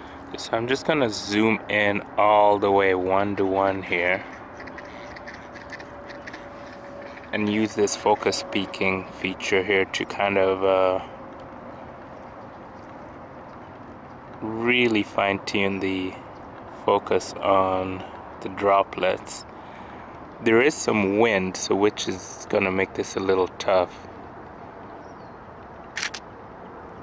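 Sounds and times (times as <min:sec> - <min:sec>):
faint background rush: 0:00.0 - 0:27.0
outdoor background noise: 0:00.0 - 0:27.0
camera shutter clicks: 0:25.9 - 0:26.3.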